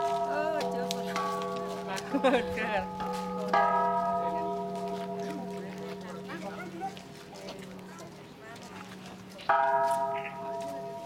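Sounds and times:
metal temple bell ringing: 0.0 - 6.7.

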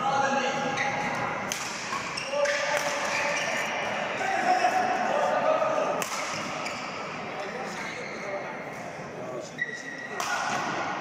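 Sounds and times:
voices in a hall: 0.0 - 11.0
rackets striking shuttlecock: 1.4 - 3.1, 6.0 - 6.6.

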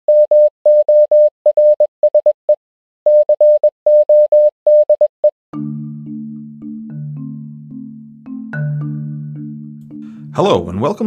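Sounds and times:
morse code beeps: 0.1 - 2.3, 3.1 - 5.1.

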